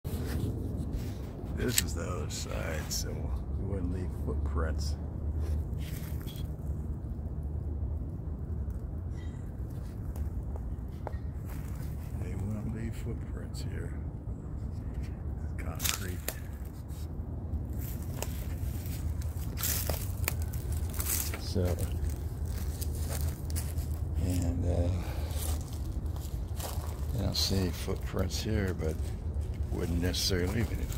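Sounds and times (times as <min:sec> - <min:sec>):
low outdoor rumble: 0:00.1 - 0:30.9
soft footsteps: 0:09.7 - 0:12.5, 0:15.8 - 0:30.9.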